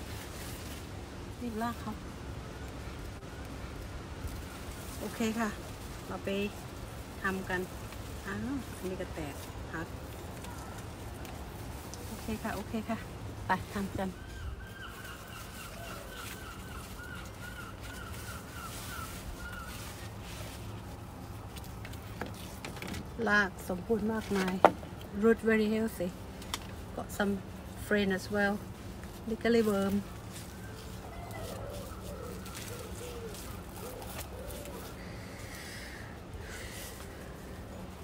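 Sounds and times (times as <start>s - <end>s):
bird calling: 13.6s - 20.7s, 29.5s - 38.0s
pigeon cooing: 30.5s - 37.9s.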